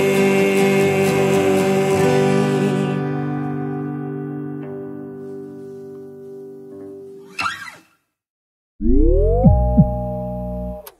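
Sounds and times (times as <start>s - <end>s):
guitar notes plucked: 8.8s - 10.9s.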